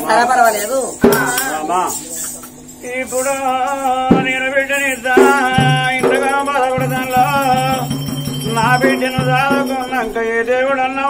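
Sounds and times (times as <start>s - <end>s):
man singing wavering line: 2.7s - 11.0s.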